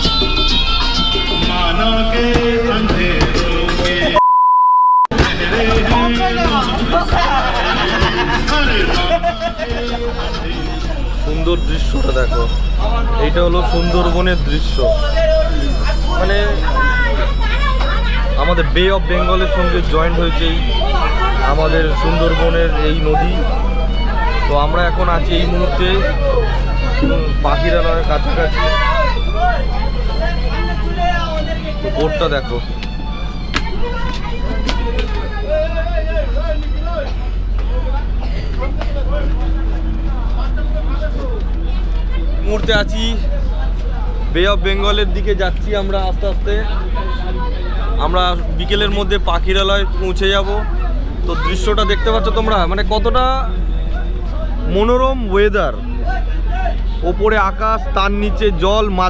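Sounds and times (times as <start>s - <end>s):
electronic beep: 4.2s - 5.1s
people talking: 5.1s - 59.0s
boat engine droning: 5.2s - 59.0s.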